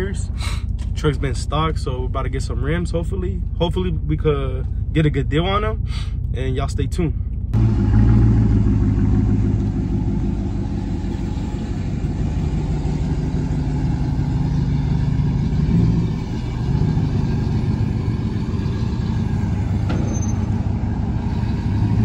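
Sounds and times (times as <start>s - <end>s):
truck engine rumbling at low revs: 0.0s - 22.0s.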